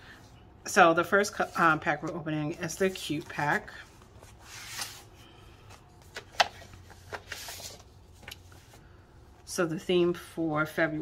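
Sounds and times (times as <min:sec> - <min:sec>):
paper rustling: 0:01.3 - 0:08.8.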